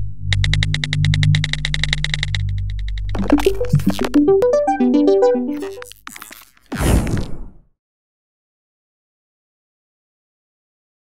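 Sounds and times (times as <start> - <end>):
low synth drone: 0.0 - 5.9
fast electronic ticking pulse: 0.2 - 6.0.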